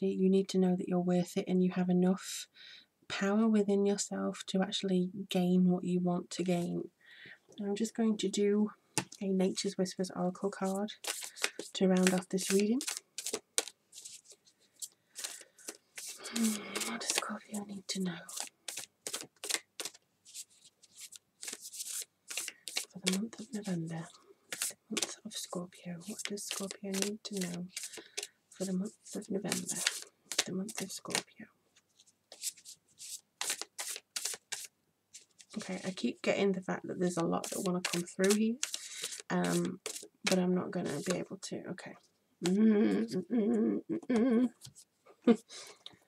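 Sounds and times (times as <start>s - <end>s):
cards being shuffled: 10.6s - 36.0s, 37.0s - 41.2s.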